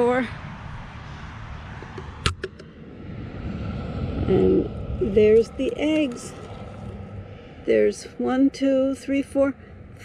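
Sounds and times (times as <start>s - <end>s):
low rumble: 0.0s - 8.9s.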